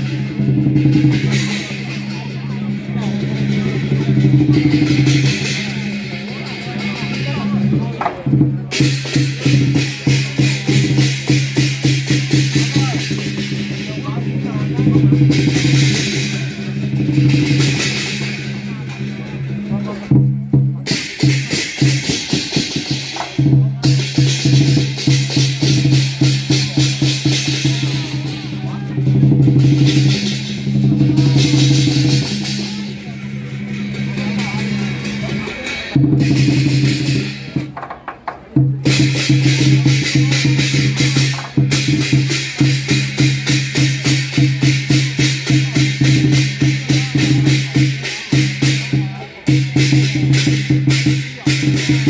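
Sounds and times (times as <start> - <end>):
clashing cymbals: 0.0 - 37.8, 38.6 - 52.0
drum beating fast: 0.0 - 52.0.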